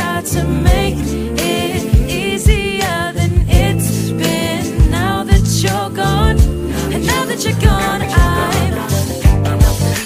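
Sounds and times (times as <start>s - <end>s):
person singing: 0.0s - 10.0s
sustained bass: 0.0s - 10.0s
steady drum beat: 0.6s - 10.0s.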